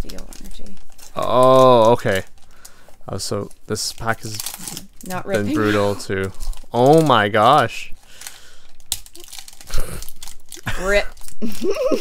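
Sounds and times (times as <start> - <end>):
foil wrapper crinkling and tearing: 0.0 - 12.0.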